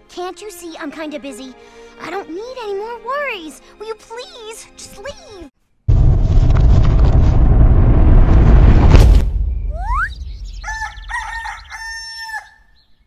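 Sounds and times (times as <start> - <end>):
loud harsh rumbling: 5.9 - 11.7
sharp crack: 5.9 - 11.7
rooster crowing: 10.6 - 12.7.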